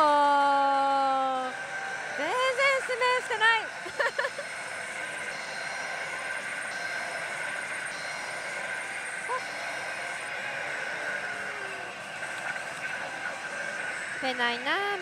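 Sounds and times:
din of gaming machines: 0:00.0 - 0:15.0.

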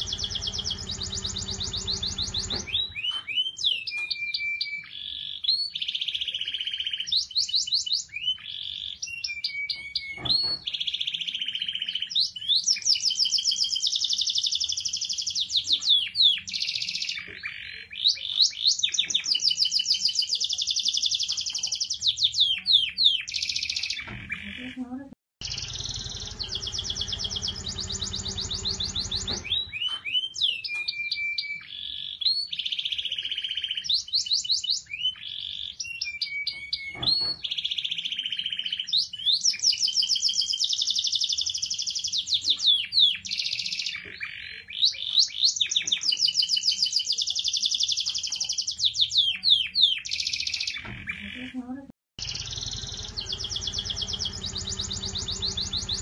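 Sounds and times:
canary singing trills: 0:00.0 - 0:56.0.

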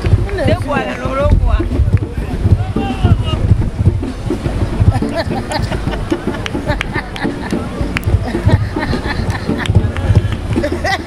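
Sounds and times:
people talking: 0:00.0 - 0:11.0
wind buffeting microphone: 0:00.0 - 0:11.0.

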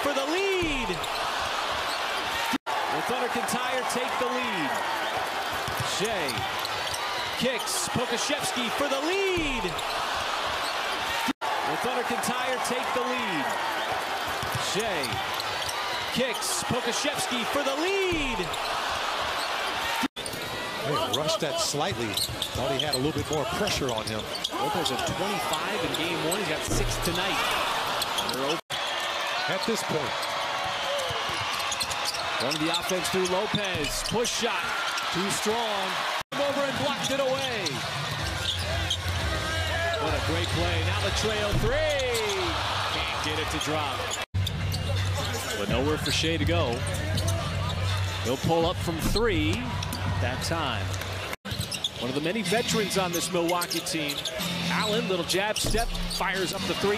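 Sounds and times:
arena crowd noise: 0:00.0 - 0:56.9
sneaker squeaks: 0:05.0 - 0:07.7, 0:09.4 - 0:11.3, 0:14.4 - 0:16.4, 0:22.0 - 0:28.6, 0:31.1 - 0:35.2, 0:38.4 - 0:39.2, 0:51.4 - 0:52.0, 0:53.1 - 0:56.8
basketball bouncing: 0:14.2 - 0:15.3, 0:41.1 - 0:42.6.

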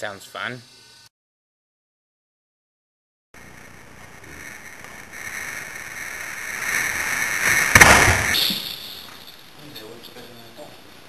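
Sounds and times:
sharp crash: 0:04.2 - 0:09.5.

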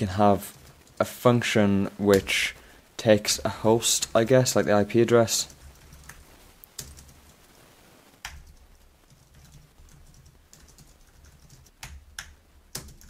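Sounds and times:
typing on computer keyboard: 0:06.8 - 0:07.2, 0:08.2 - 0:13.0.

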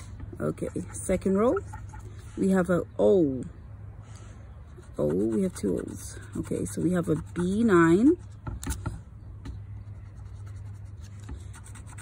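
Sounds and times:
scratching lottery ticket: 0:04.8 - 0:08.8, 0:09.9 - 0:12.0.

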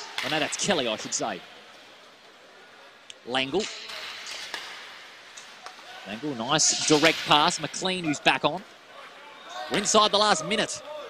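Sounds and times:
arena noise: 0:00.0 - 0:11.0
hockey sticks clicking on puck: 0:00.1 - 0:01.2, 0:03.6 - 0:05.9, 0:06.6 - 0:07.8.

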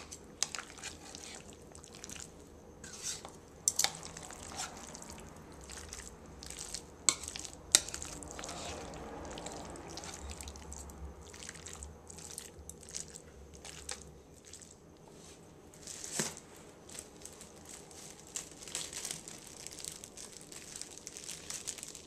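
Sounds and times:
metal spoon stirring salad: 0:00.0 - 0:14.7.

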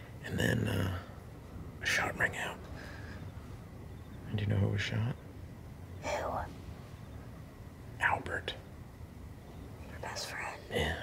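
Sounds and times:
person whispering: 0:01.8 - 0:02.6, 0:06.0 - 0:06.5, 0:09.9 - 0:11.0.

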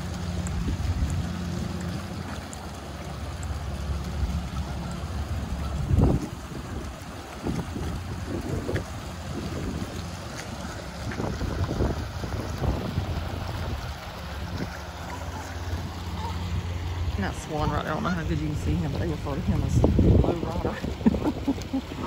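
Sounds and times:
wind buffeting microphone: 0:00.0 - 0:02.3, 0:03.9 - 0:22.0.

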